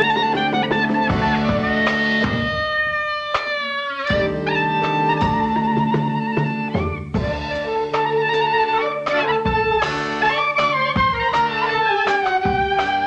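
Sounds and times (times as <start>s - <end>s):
clarinet melody: 0.0s - 13.0s
klezmer band playing: 0.0s - 13.0s.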